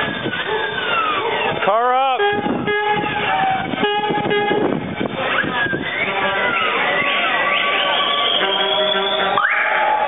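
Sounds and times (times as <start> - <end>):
single-note horn blasts: 2.2 - 4.8
rising-and-falling whoop: 5.3 - 10.0.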